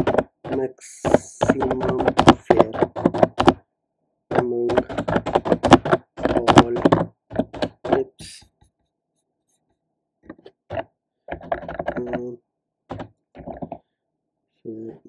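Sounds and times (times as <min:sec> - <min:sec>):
computer keyboard typing: 0:00.0 - 0:03.6, 0:04.3 - 0:08.4, 0:11.3 - 0:12.3.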